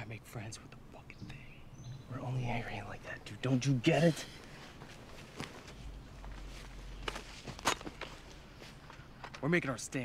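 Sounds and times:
footsteps on forest ground: 0:04.2 - 0:09.6.

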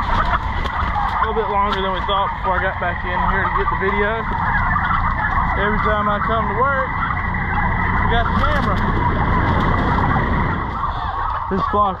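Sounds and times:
low rumble: 0:00.0 - 0:12.0
turkeys calling: 0:00.0 - 0:12.0.

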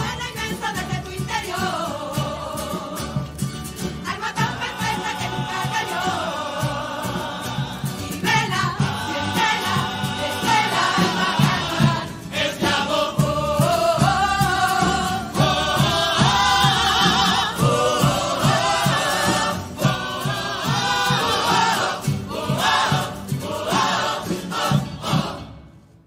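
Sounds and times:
choir singing: 0:00.0 - 0:25.7
guitars: 0:00.0 - 0:26.0.

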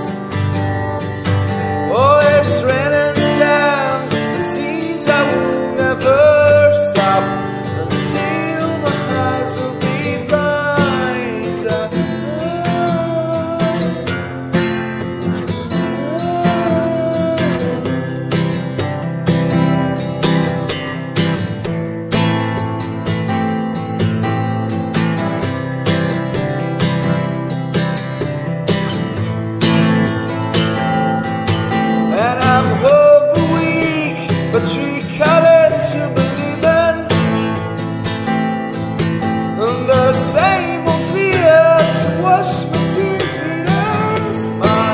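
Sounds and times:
acoustic guitar music: 0:00.0 - 0:44.9.

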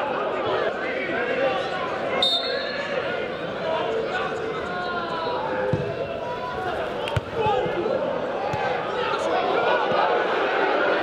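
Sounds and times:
crowd: 0:00.0 - 0:11.0
players shouting: 0:00.0 - 0:11.0.

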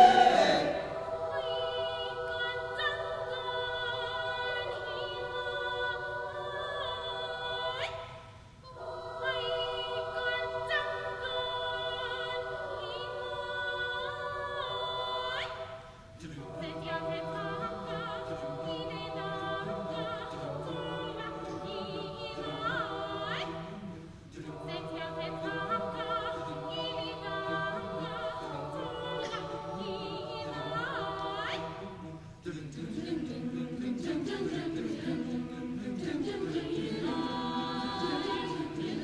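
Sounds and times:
mixed choir singing held chords: 0:00.0 - 0:39.0.

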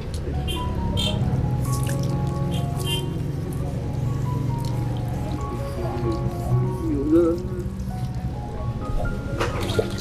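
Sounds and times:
background music: 0:00.0 - 0:10.0
water poured splashing and dripping: 0:01.7 - 0:03.0, 0:09.4 - 0:10.0.

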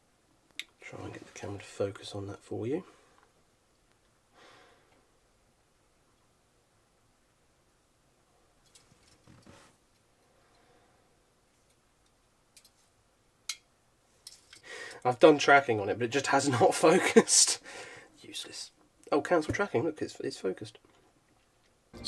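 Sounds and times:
soft rustle: 0:08.3 - 0:13.1.

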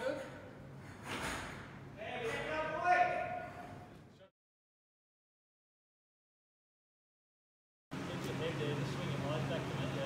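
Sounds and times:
indistinct voices in echoing room: 0:00.0 - 0:04.3.

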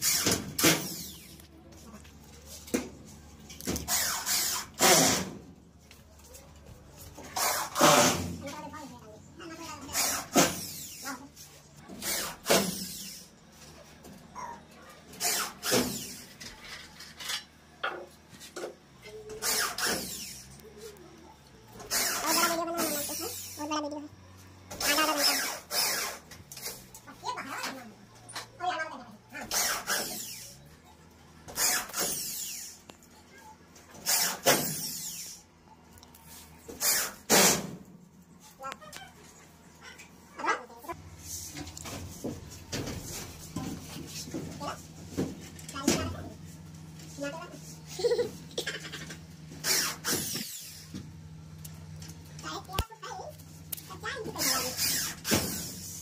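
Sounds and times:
electric drill driving a screw: 0:00.0 - 0:01.4, 0:19.4 - 0:20.6, 0:24.8 - 0:26.2, 0:31.5 - 0:32.8, 0:49.6 - 0:50.9.

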